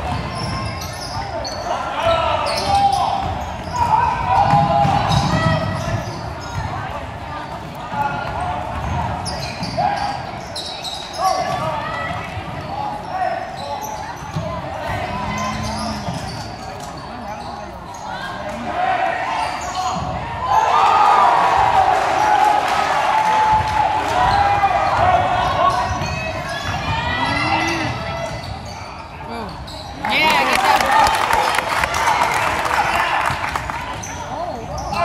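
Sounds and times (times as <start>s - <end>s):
sneakers squeaking: 0.0s - 18.6s, 19.2s - 20.7s, 24.2s - 32.1s, 32.9s - 35.0s
voices in a gym: 0.0s - 35.0s.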